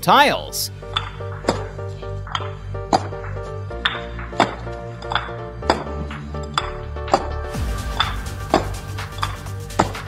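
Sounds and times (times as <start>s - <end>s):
music with bass line: 0.7s - 10.0s
paving blocks knocking together: 1.0s - 7.3s.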